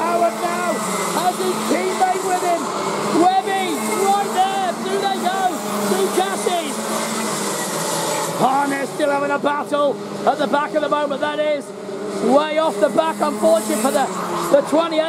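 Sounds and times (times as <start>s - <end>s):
kart engines racing past: 0.0s - 15.0s.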